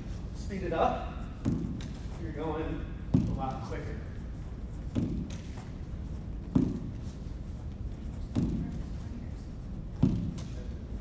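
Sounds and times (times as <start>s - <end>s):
ball thudding against wall: 1.3s - 2.1s, 3.0s - 3.6s, 4.8s - 5.7s, 6.4s - 7.0s, 9.9s - 10.6s.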